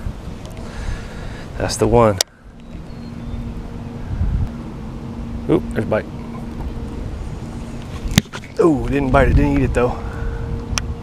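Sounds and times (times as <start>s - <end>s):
electric trolling motor humming: 0.0s - 11.0s
wind rumbling on microphone: 0.0s - 11.0s.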